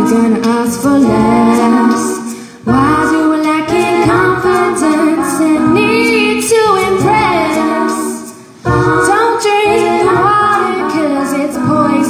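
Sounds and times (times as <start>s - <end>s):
looped vocal layers: 0.0s - 12.0s
woman singing into microphone: 0.0s - 12.0s.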